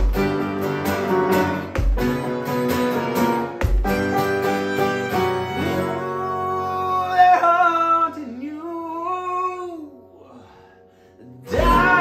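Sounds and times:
person singing long sliding note: 11.4 - 12.0.

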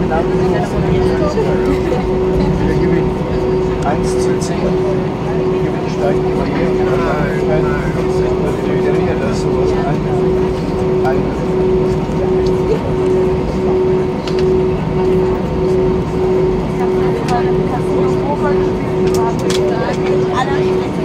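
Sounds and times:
indistinct cabin voices: 0.0 - 21.0
jet engines idling hum: 0.0 - 21.0.

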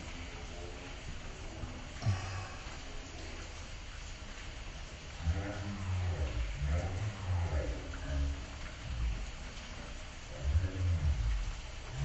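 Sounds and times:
steady rain: 0.0 - 12.0.

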